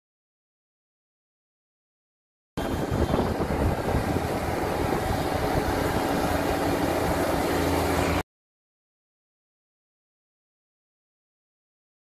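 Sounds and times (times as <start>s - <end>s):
combine harvester running: 2.6s - 8.2s.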